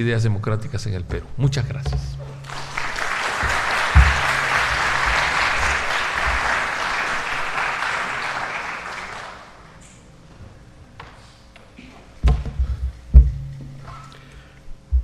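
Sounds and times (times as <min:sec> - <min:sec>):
audience applauding: 0:02.4 - 0:09.6
low thump: 0:04.0 - 0:04.8.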